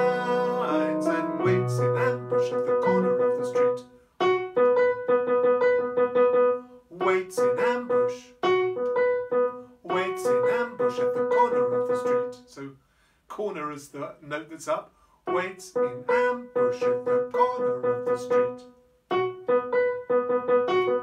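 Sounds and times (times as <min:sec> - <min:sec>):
keyboard piano chords: 0:00.0 - 0:12.4, 0:15.3 - 0:21.0.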